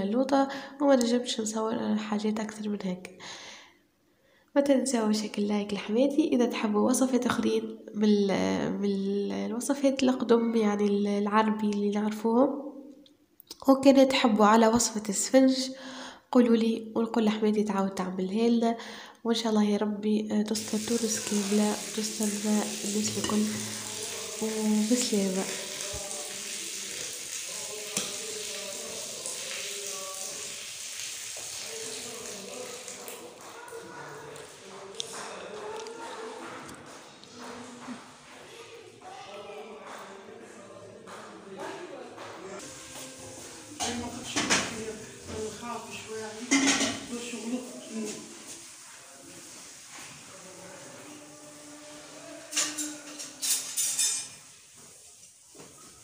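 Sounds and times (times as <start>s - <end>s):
people talking: 4.6s - 12.5s, 19.3s - 30.5s, 31.6s - 43.2s, 43.8s - 48.3s
steady hiss: 20.6s - 33.0s, 42.6s - 43.8s
cutlery clinking on metal dishes: 23.0s - 24.3s, 43.7s - 44.9s, 46.5s - 47.1s, 52.4s - 54.5s.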